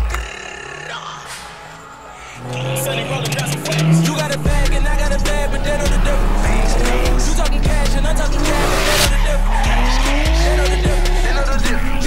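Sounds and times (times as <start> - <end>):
car engine revving: 2.2 - 12.0
tyres squealing: 2.4 - 12.0
music with heavy bass beat: 2.5 - 12.0.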